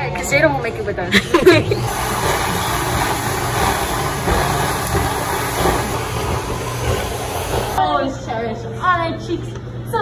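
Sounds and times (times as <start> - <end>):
stuffing machine blower running: 1.6 - 7.8.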